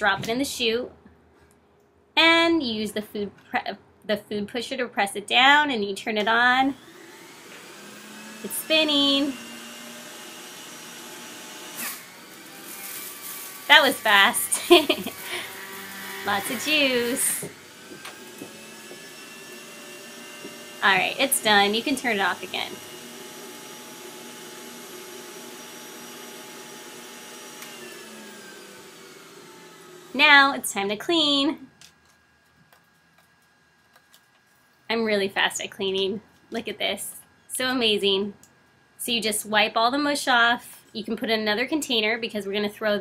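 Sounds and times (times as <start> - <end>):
electric juicer shredding apple: 6.7 - 30.6.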